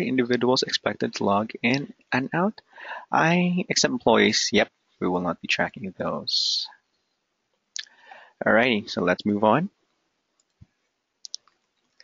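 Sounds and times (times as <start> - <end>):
computer mouse clicks: 10.4 - 10.7.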